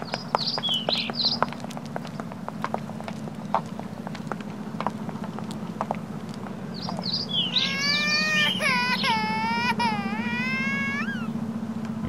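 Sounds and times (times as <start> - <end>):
kitten meowing: 7.4 - 11.3.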